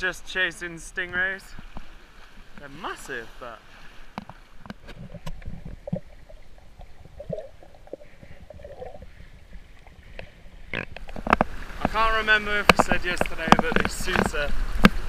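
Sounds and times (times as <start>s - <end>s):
water splashing: 0.0s - 15.0s
water sloshing: 0.3s - 15.0s
muffled underwater rumble: 4.8s - 11.6s.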